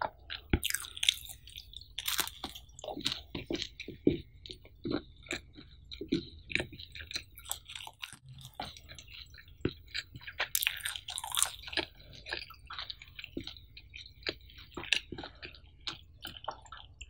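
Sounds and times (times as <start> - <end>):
chewing pizza: 0.0 - 17.0
crust crunching: 0.5 - 13.6.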